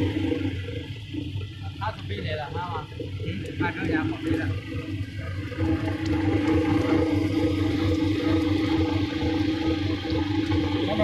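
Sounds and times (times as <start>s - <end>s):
machine motor humming: 0.0s - 11.0s
stirring arms churning wet seeds: 1.4s - 11.0s.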